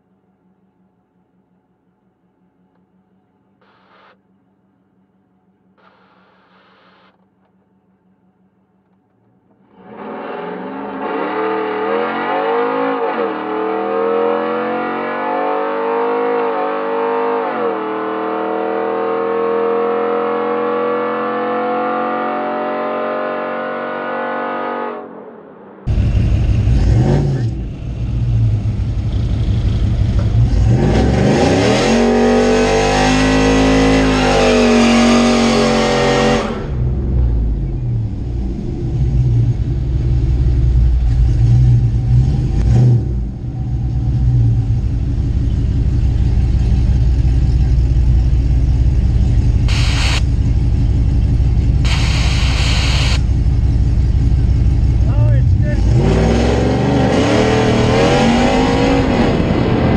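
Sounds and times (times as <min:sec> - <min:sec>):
truck engine revving and idling: 0:25.9 - 0:59.9
short hisses: 0:51.9 - 0:53.2.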